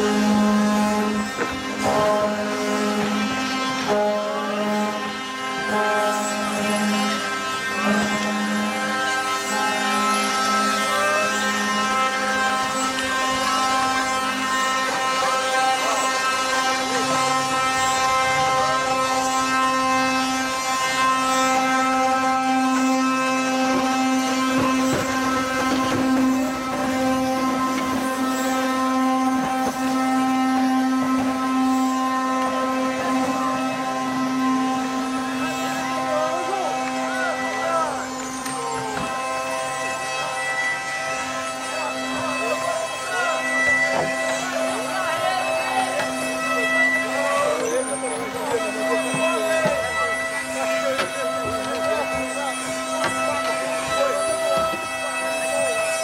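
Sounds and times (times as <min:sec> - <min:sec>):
wooden cart axles wailing: 0:00.0 - 0:56.0.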